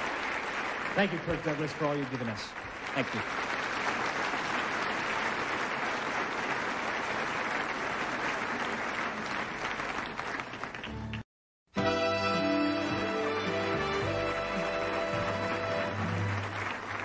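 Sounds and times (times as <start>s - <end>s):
audience applauding: 0.0s - 11.2s, 12.6s - 17.0s.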